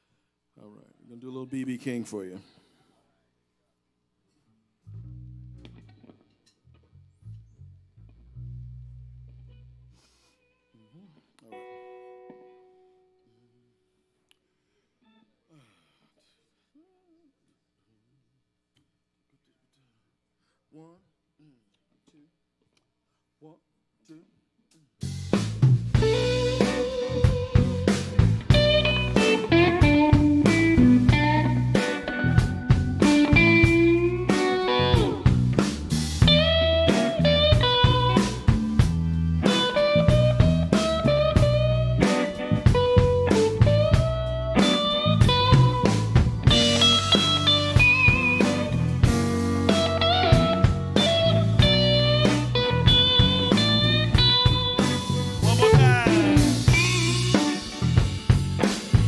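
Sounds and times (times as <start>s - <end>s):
blues band playing: 25.0s - 59.0s
lead electric guitar bending notes: 26.0s - 59.0s.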